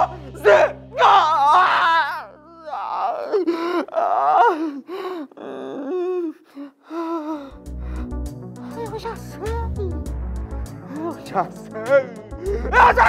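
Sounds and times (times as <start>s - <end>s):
man wailing: 0.0s - 4.6s, 11.8s - 13.0s
background music: 0.0s - 6.3s, 6.9s - 13.0s.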